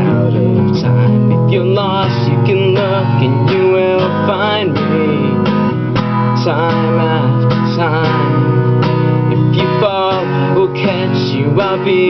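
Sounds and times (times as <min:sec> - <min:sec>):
fingerstyle acoustic guitar: 0:00.0 - 0:12.0
man singing: 0:00.0 - 0:12.0.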